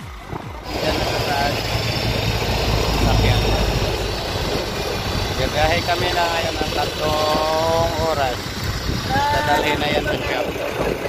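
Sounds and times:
truck engine droning: 0:00.0 - 0:11.0.

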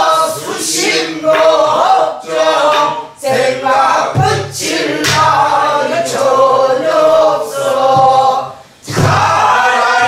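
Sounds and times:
folk song sung by several voices: 0:00.0 - 0:10.0.

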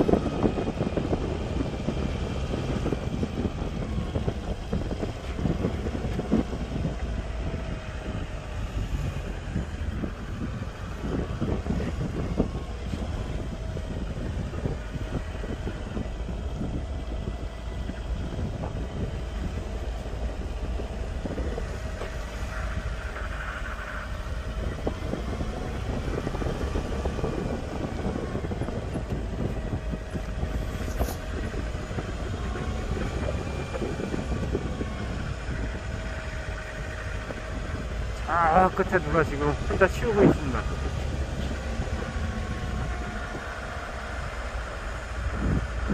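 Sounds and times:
golf cart driving: 0:00.0 - 0:45.9.

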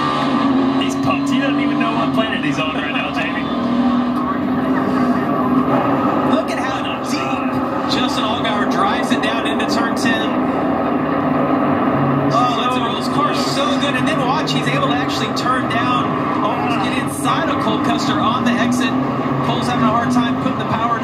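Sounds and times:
race car engines: 0:00.0 - 0:21.0
indistinct voices: 0:00.7 - 0:11.1, 0:12.0 - 0:21.0.

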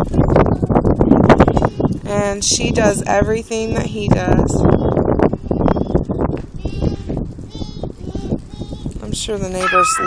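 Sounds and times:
wind buffeting microphone: 0:00.0 - 0:10.0
young children squealing: 0:09.6 - 0:10.0.

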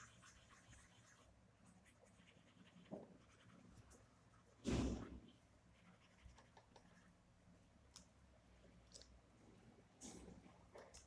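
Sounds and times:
pencil scratching on paper: 0:00.0 - 0:04.2, 0:05.7 - 0:07.1.

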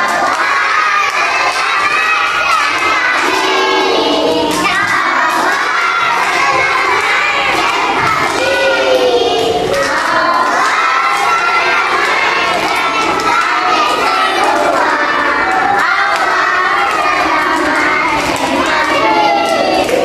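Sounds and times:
children shouting and singing: 0:00.0 - 0:20.0
hand clapping: 0:00.0 - 0:20.0.

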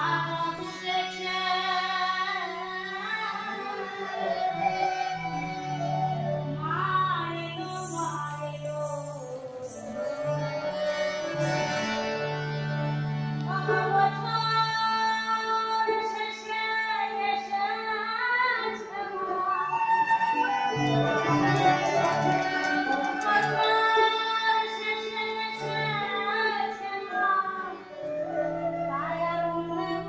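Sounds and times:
harmonium drone: 0:00.0 - 0:16.1, 0:20.7 - 0:28.1
bamboo flute melody: 0:03.5 - 0:12.2, 0:19.2 - 0:24.4, 0:27.5 - 0:30.0.

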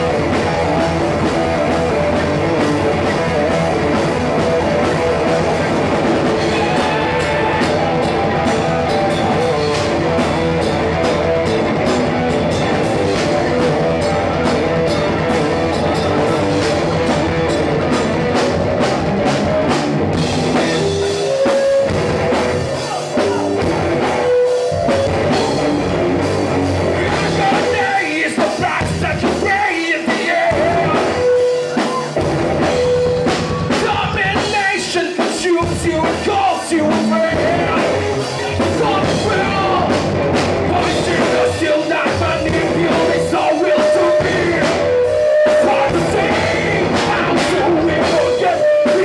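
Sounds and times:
bass guitar: 0:00.0 - 0:49.0
drum kit beat: 0:00.0 - 0:49.0
electric guitar: 0:00.0 - 0:49.0.

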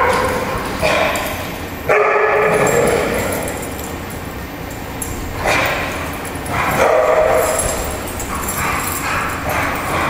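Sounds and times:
dogs barking: 0:00.0 - 0:03.9, 0:05.3 - 0:10.0.

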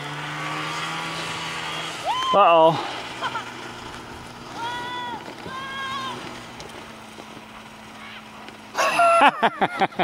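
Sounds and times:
low engine hum: 0:00.0 - 0:10.0
snowmobile engine revving: 0:00.0 - 0:10.0.

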